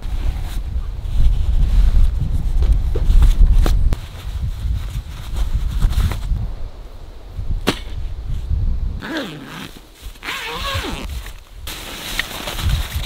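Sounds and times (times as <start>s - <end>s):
tent fabric rustling: 9.0s - 13.0s.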